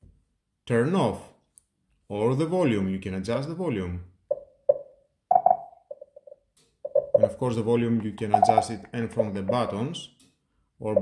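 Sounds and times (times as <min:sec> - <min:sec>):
speaker feedback blips: 0:05.3 - 0:05.8, 0:06.9 - 0:07.4, 0:08.3 - 0:09.8.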